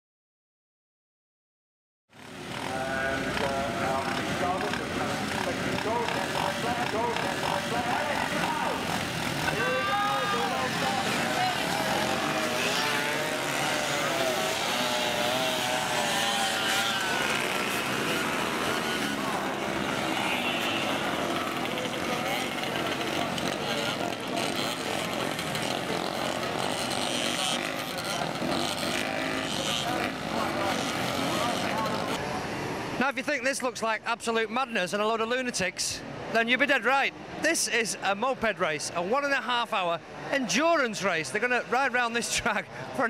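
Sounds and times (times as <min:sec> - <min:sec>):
moped engines revving: 0:02.1 - 0:33.0.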